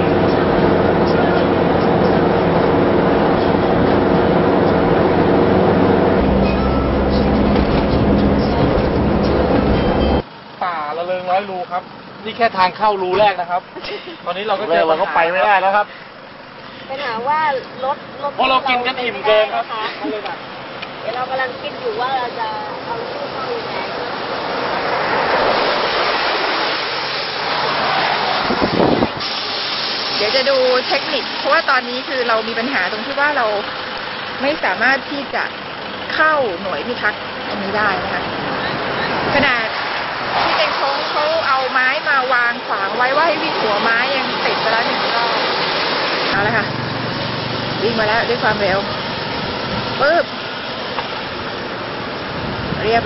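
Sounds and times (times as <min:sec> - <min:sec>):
low rumbling buffet: 0:00.0 - 0:10.2
car engine and tyre noise: 0:00.0 - 0:53.0
man speaking: 0:10.6 - 0:16.0, 0:16.9 - 0:20.4
rushing hiss: 0:25.1 - 0:32.3.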